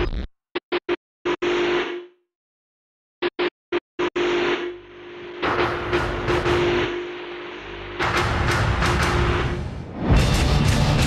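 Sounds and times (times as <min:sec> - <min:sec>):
steady droning tone: 0:04.0 - 0:09.6.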